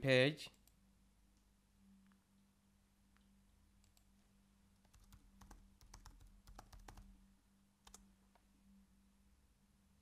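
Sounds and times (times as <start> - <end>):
faint keyboard typing: 3.2 - 4.2, 4.8 - 7.2, 7.8 - 8.5.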